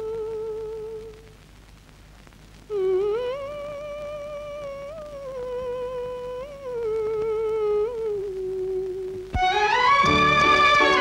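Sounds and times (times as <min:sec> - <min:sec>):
woman humming a slow melody: 0:00.0 - 0:01.3, 0:02.7 - 0:09.4.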